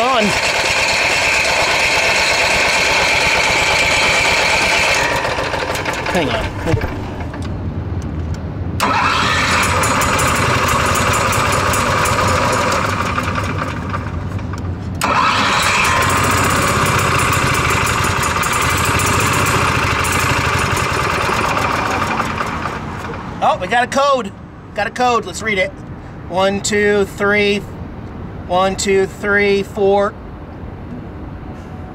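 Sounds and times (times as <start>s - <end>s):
generator engine starting and running: 0.0s - 8.1s, 8.7s - 24.5s.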